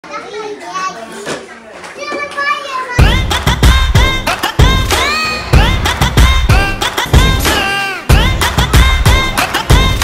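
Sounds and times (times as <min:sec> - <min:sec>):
children calling out and chattering: 0:00.0 - 0:10.0
music with heavy bass beat: 0:03.0 - 0:10.0.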